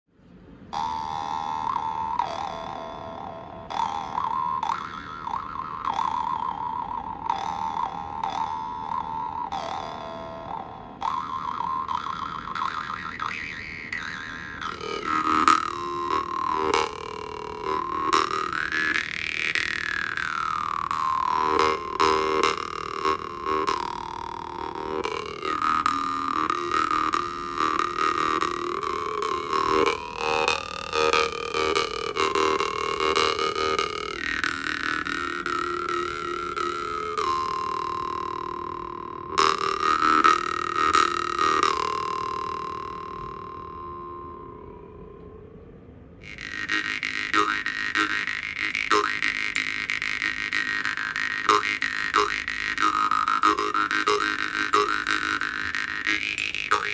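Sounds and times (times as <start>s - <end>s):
jaw harp twanging drone: 0.6s - 56.9s.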